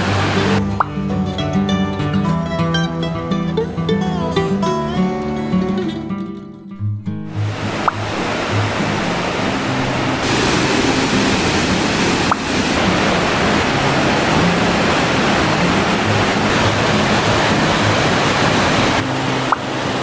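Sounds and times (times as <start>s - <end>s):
waterfall rushing: 0.0s - 0.8s, 7.2s - 20.0s
water pouring over boulders: 7.3s - 20.0s.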